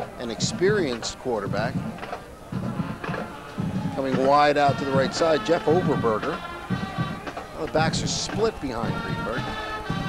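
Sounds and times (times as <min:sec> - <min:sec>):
drum beats: 0:00.0 - 0:10.0
school band playing: 0:00.5 - 0:10.0.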